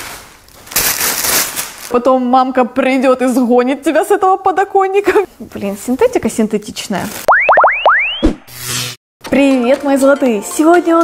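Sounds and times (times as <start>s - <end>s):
plastic packaging crinkling: 0.0s - 2.0s, 6.6s - 7.3s.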